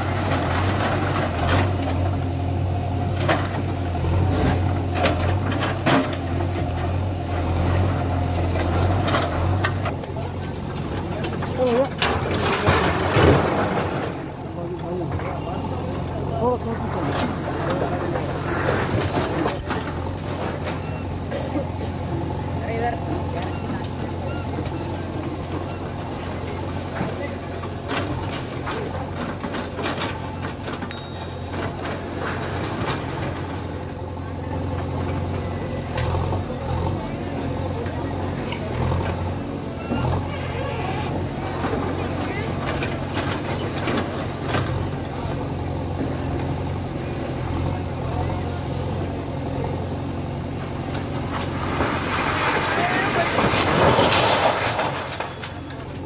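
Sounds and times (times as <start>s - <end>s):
diesel engine running: 0.0s - 56.0s
masonry breaking and crumbling: 9.9s - 20.8s, 25.0s - 35.1s, 51.2s - 56.0s.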